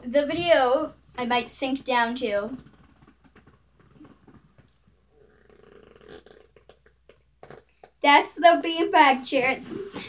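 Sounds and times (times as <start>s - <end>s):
beanbag chair squeaking and rustling: 2.6s - 6.4s
faint fart-like rasp: 2.6s - 8.0s.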